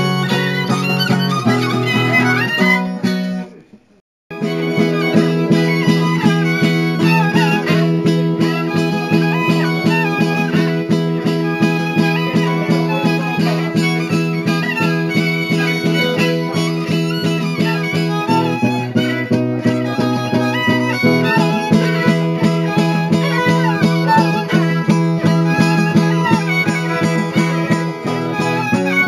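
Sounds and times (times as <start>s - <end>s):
high fiddle melody: 0.0s - 3.6s, 4.3s - 29.0s
strummed chords: 0.0s - 29.0s.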